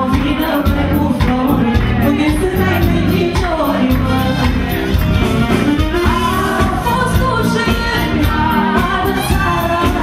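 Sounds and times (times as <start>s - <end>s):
woman singing into a microphone: 0.0s - 4.8s, 6.0s - 10.0s
amplified band music: 0.0s - 10.0s.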